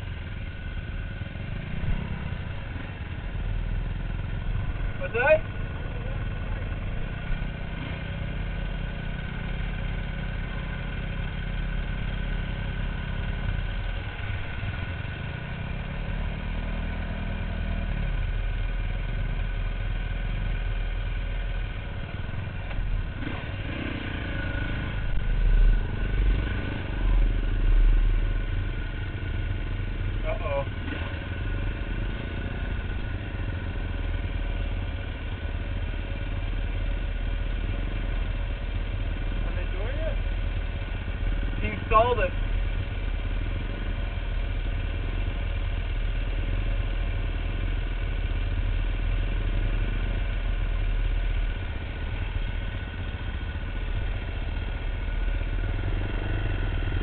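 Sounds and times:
dirt bike engines idling: 0.0s - 57.0s.

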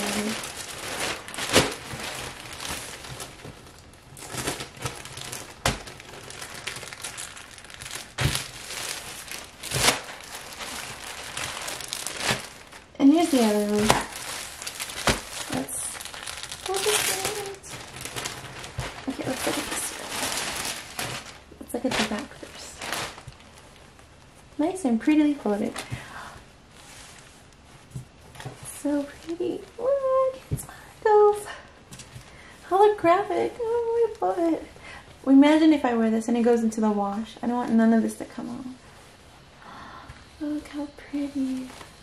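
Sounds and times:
plastic bag crinkling: 0.0s - 34.7s, 40.9s - 42.0s.

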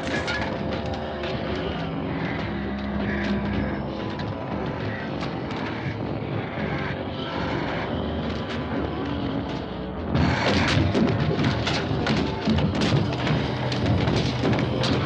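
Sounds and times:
steady engine drone: 0.0s - 15.0s.

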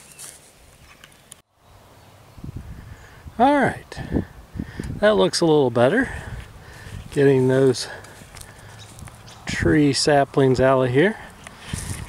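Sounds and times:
wind buffeting microphone: 2.3s - 5.3s, 6.0s - 10.7s, 11.3s - 12.0s.

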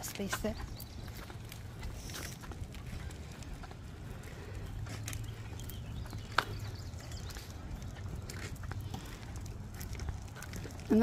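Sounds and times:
stroller wheels rolling on asphalt: 0.0s - 11.0s.

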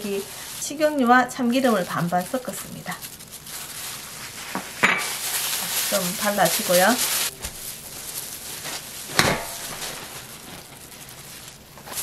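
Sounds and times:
handling noise with paper: 0.0s - 12.0s.

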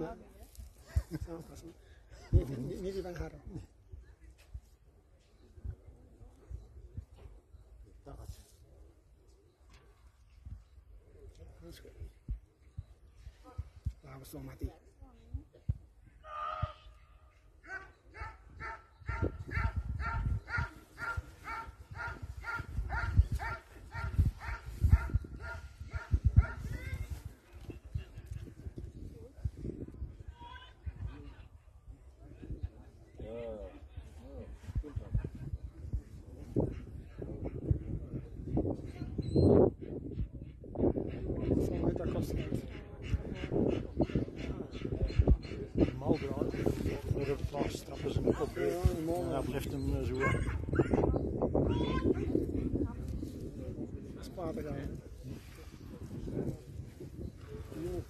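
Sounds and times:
wind buffeting microphone: 18.0s - 58.0s
dog barking rapidly: 18.2s - 26.6s, 50.2s - 51.0s.

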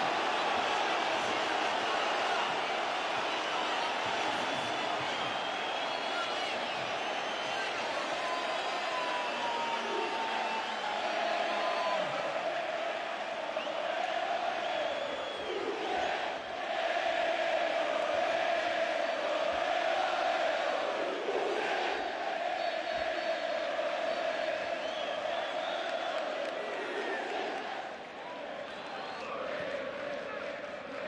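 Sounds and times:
crowd chanting and singing: 0.0s - 31.0s.

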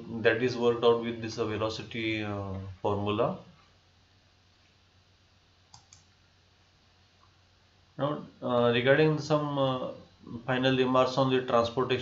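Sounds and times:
computer mouse clicks: 5.7s - 6.2s.

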